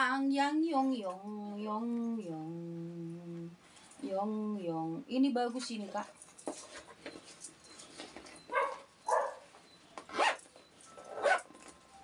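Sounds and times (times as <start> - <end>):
zipper rasping: 10.1 - 11.5.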